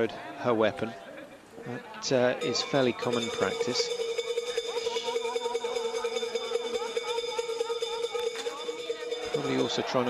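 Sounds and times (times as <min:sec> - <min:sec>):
distant voice: 0:00.0 - 0:10.0.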